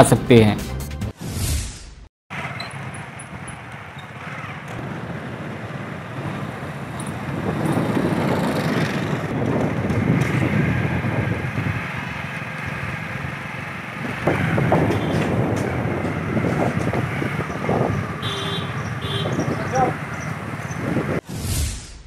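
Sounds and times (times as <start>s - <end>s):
low rumble of motor traffic: 2.3s - 21.2s.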